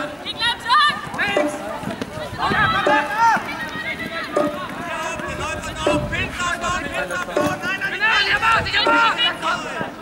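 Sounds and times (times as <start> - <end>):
players shouting: 0.0 - 10.0.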